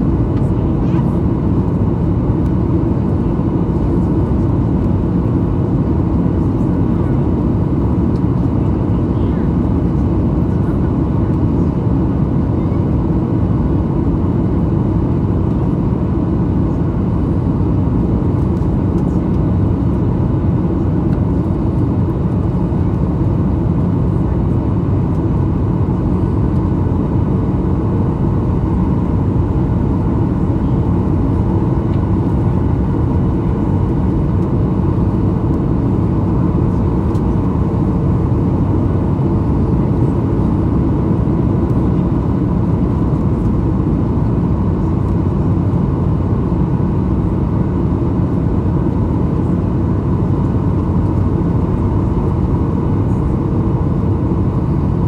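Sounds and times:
jet engine and rushing airflow: 0.0 - 55.0.

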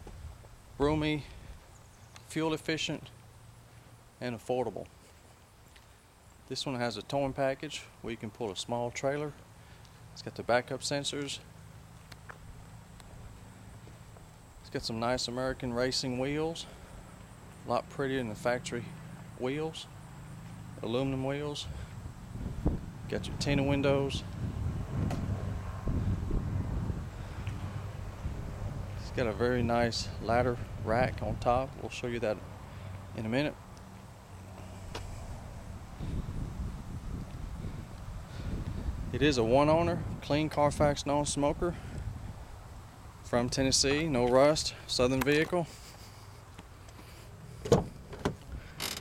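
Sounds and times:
wind rumble on microphone: 21.6 - 31.8, 35.0 - 42.6
door scraping open: 47.6 - 49.0.

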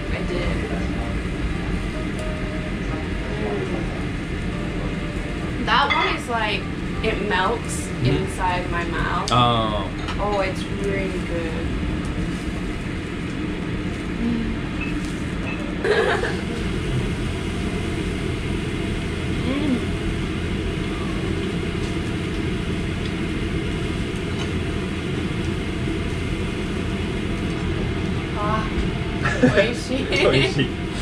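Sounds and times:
ventilation rumble: 0.0 - 31.0
woman laughing: 15.8 - 16.6, 29.2 - 30.6.

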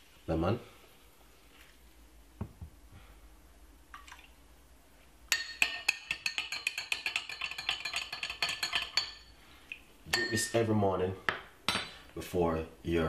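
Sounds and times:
spoon clinking in glass: 5.3 - 9.3, 10.1 - 10.6.

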